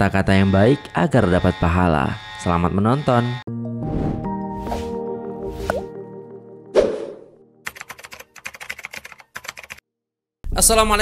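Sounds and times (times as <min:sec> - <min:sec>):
rapid keyboard typing clicks: 0:07.7 - 0:09.8.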